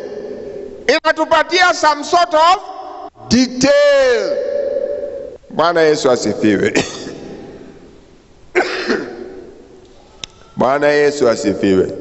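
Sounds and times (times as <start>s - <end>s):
man coughing: 6.7s - 7.4s, 8.5s - 9.3s.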